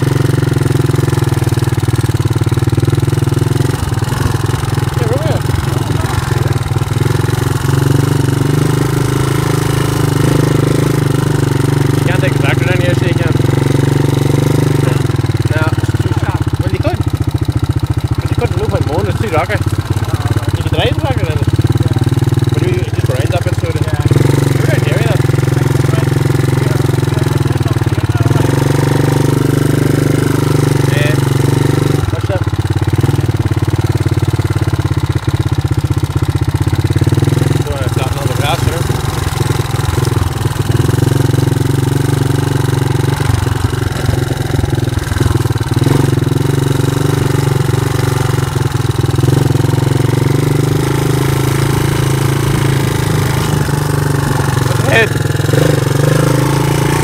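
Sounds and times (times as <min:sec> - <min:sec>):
quad bike engine running: 0:00.0 - 0:57.0.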